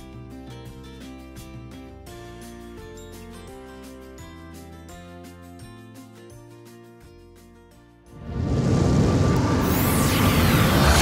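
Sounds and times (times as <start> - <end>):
deep rumble: 8.1 - 11.0
rushing swell: 8.1 - 11.0
whooshes gliding: 8.1 - 11.0.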